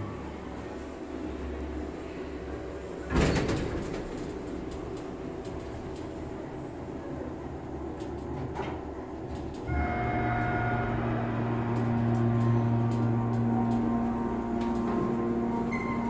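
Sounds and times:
elevator pump humming and whining: 0:00.0 - 0:16.0
elevator doors sliding shut: 0:03.0 - 0:06.5, 0:07.8 - 0:16.0.

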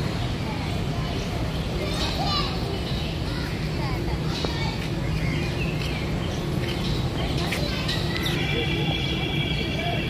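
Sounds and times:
children's voices: 0:00.0 - 0:10.0
indistinct chatter of visitors: 0:00.0 - 0:10.0.

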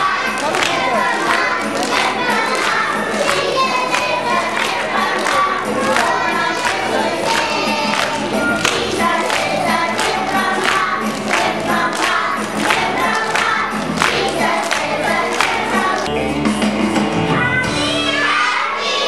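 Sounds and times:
children clapping hands: 0:00.0 - 0:16.1
children singing: 0:00.0 - 0:16.3, 0:17.4 - 0:19.0.

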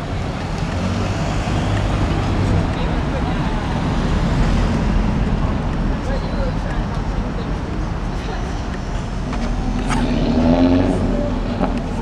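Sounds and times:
low rumble of traffic: 0:00.0 - 0:12.0.

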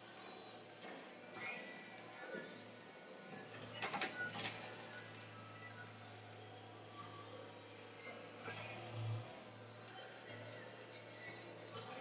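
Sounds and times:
engine droning: 0:00.0 - 0:12.0.

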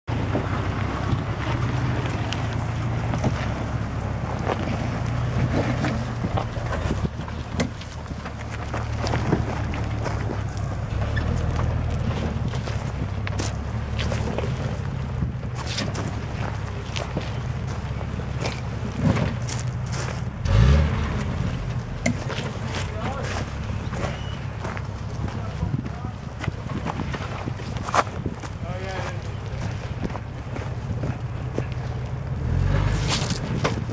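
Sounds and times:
car engine running low: 0:00.1 - 0:33.9
tyres rolling over stones: 0:00.1 - 0:33.9.

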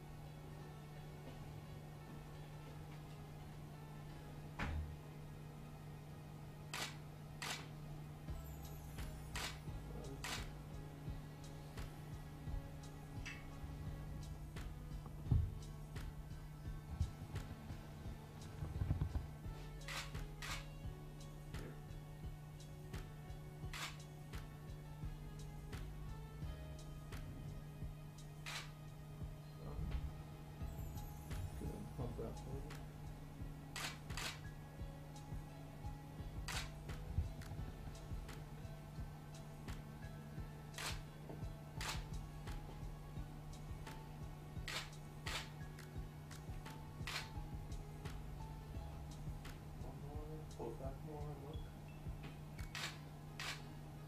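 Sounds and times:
background music with low beat: 0:00.0 - 0:54.0
steady low hum: 0:00.0 - 0:54.0
camera shutter clicks: 0:06.8 - 0:07.7, 0:19.9 - 0:20.7, 0:28.4 - 0:28.8, 0:33.8 - 0:34.4, 0:41.8 - 0:42.0, 0:47.1 - 0:47.3, 0:52.6 - 0:53.6.

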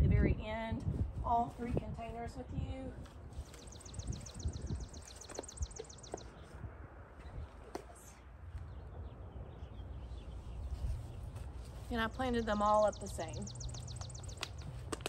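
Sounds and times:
songbird trilling: 0:03.5 - 0:06.4, 0:12.2 - 0:14.8.

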